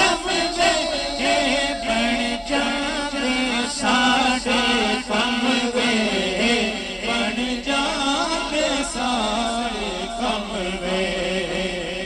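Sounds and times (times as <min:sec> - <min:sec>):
male chorus holding low note: 0:00.0 - 0:12.0
man singing ornamented melody: 0:00.0 - 0:12.0.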